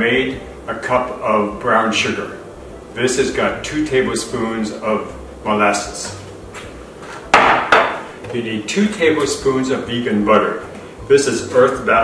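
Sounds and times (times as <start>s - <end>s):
containers knocking on countertop: 7.3s - 8.4s.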